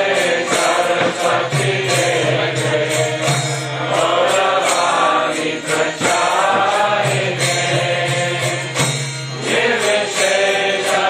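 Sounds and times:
steady percussion beat: 0.0 - 11.0
voices chanting in melody: 0.0 - 11.0.

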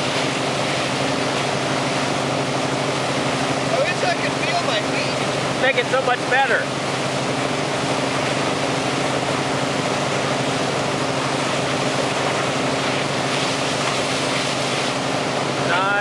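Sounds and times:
boat engine drone: 0.0 - 16.0
water wake rushing: 0.0 - 16.0.

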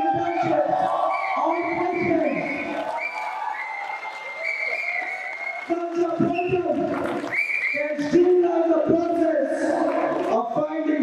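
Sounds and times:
man speaking over public address: 0.0 - 2.8, 5.6 - 11.0
crowd noise: 0.0 - 11.0.

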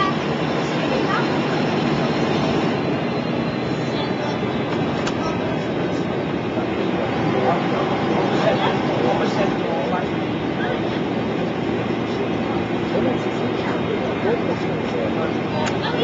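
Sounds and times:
bus diesel engine under load: 0.0 - 16.0
road and body noise: 0.0 - 16.0.

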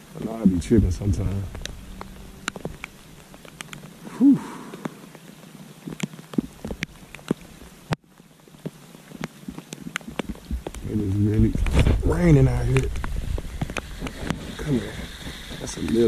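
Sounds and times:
rain falling on water: 0.0 - 16.0
drops ticking on a kayak: 0.2 - 16.0.

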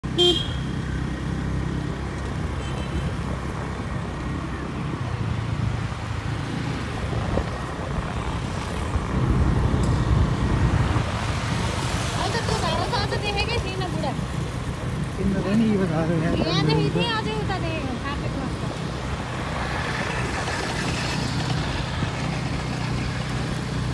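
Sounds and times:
vehicle engine rumble: 0.0 - 23.9
car horn toot: 0.2 - 0.7.

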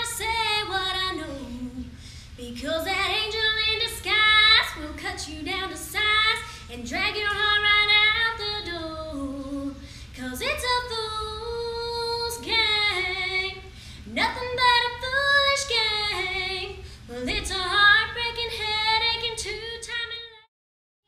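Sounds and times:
steady low hum: 0.0 - 20.4
woman singing unaccompanied: 0.0 - 20.5.

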